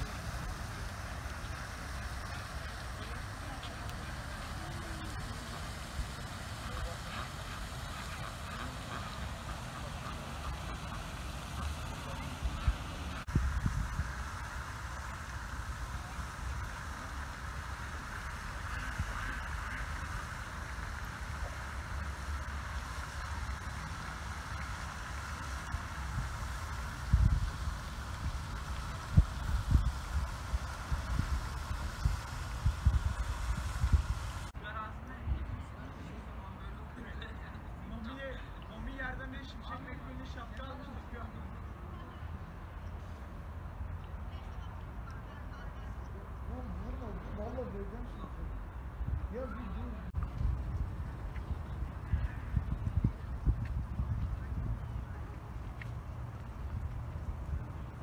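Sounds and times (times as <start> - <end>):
wind buffeting microphone: 11.6 - 17.0, 25.4 - 34.6, 48.9 - 58.0.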